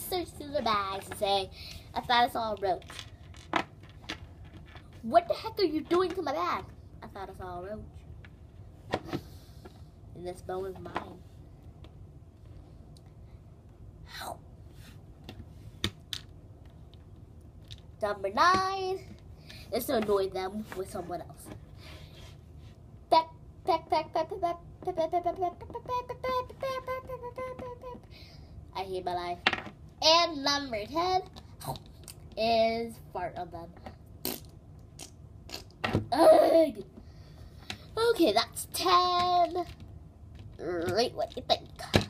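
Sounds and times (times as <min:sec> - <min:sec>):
low room noise: 0:00.0 - 0:42.0.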